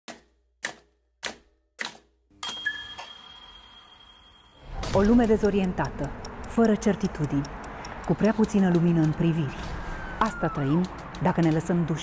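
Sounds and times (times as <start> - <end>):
ringing sound: 2.4 - 4.8.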